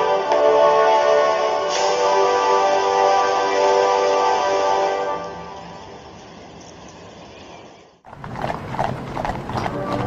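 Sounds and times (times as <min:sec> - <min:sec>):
hooves clip-clopping on gravel: 0:08.0 - 0:10.0.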